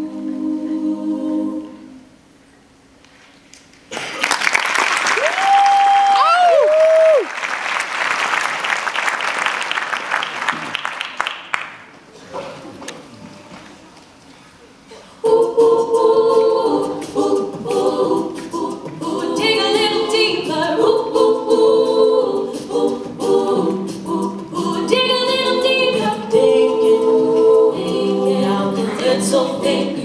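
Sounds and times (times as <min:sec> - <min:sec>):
female group singing in harmony: 0:00.0 - 0:02.2, 0:14.9 - 0:30.0.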